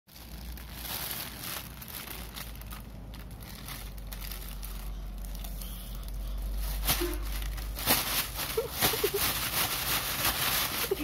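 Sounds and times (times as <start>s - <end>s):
plastic bag crinkling and rustling: 0.1s - 11.0s.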